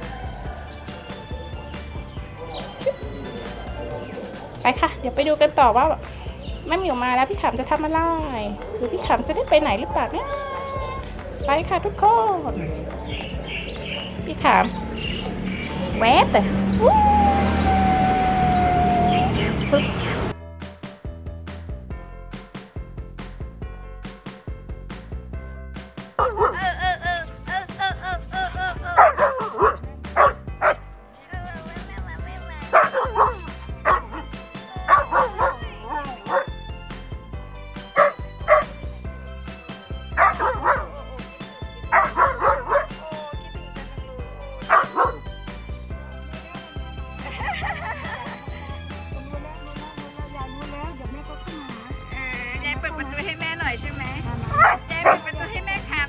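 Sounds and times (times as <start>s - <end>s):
music track: 0.0s - 56.0s
dog howling: 16.8s - 19.4s, 32.7s - 36.6s, 40.2s - 41.3s, 41.9s - 45.2s
dog yips: 26.2s - 26.6s, 29.0s - 30.8s, 32.7s - 36.6s, 38.0s - 38.7s, 40.2s - 40.9s, 41.9s - 43.4s, 44.6s - 45.2s, 54.5s - 55.2s.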